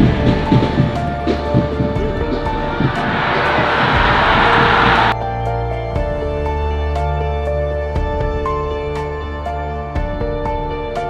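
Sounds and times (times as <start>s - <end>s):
background music: 0.0s - 11.0s
stadium crowd cheering: 2.0s - 5.2s.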